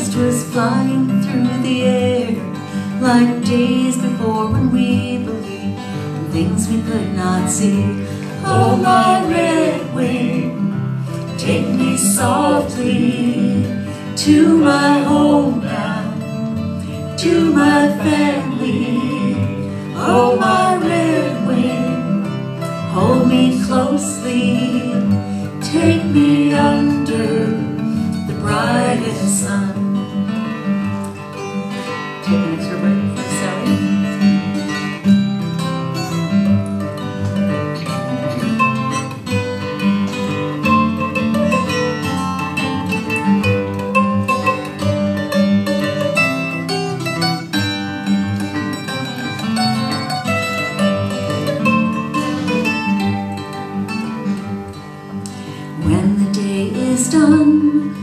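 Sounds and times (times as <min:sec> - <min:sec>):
person singing: 0:00.0 - 0:05.6, 0:06.2 - 0:10.7, 0:11.4 - 0:16.3, 0:17.1 - 0:30.0, 0:32.2 - 0:34.1, 0:55.8 - 0:58.0
acoustic guitar strumming rhythm: 0:00.0 - 0:58.0
mandolin picked melody: 0:00.0 - 0:58.0.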